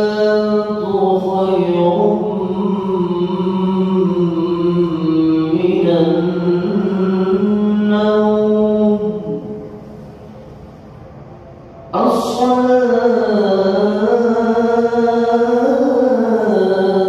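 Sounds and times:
man chanting melodic recitation: 0:00.0 - 0:09.7, 0:11.9 - 0:17.0.

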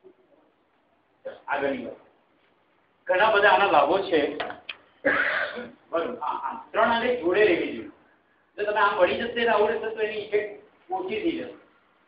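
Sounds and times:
man speaking: 0:01.2 - 0:02.1, 0:03.0 - 0:04.6, 0:05.9 - 0:11.7.

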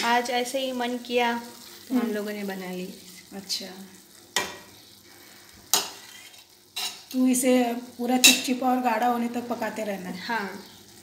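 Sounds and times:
quiet sizzle: 0:00.0 - 0:11.0.

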